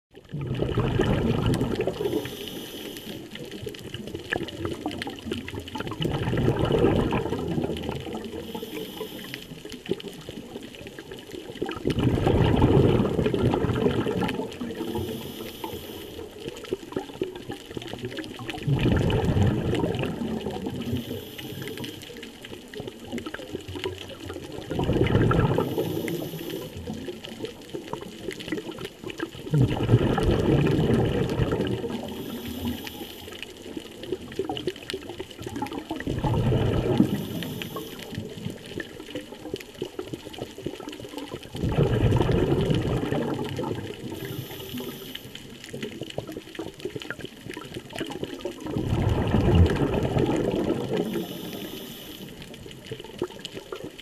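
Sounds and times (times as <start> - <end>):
bubbling exhale underwater: 0.1 - 54.0
regulator hiss on inhale: 1.9 - 3.6, 8.4 - 9.7, 14.8 - 16.6, 20.8 - 22.2, 25.6 - 26.9, 32.1 - 33.7, 37.0 - 38.4, 44.1 - 45.6, 50.9 - 52.6.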